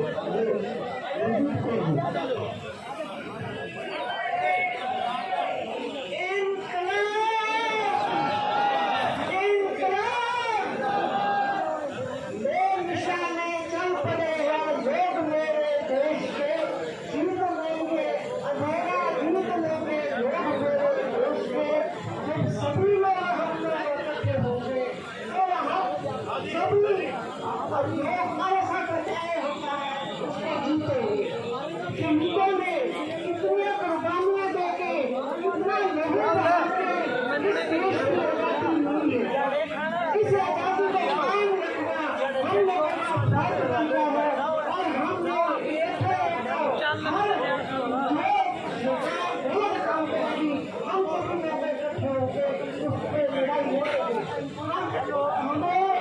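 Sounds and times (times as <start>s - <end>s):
many people talking: 0.0s - 56.0s
small crowd chatter: 0.0s - 56.0s.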